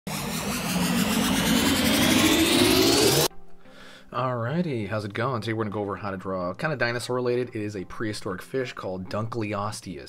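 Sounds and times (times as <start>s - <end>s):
faint rising whine: 0.0s - 3.3s
rushing noise: 0.0s - 3.3s.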